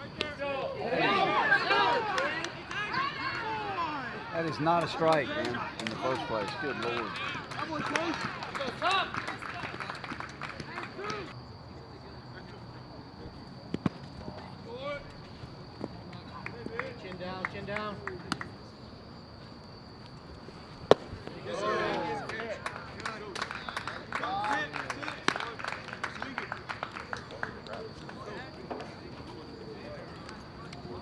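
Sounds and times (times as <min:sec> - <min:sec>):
people calling out: 0:00.2 - 0:09.8, 0:21.2 - 0:22.7
people shouting: 0:00.6 - 0:04.6, 0:11.0 - 0:11.3, 0:21.4 - 0:22.6
bat cracking baseball: 0:20.8 - 0:22.0.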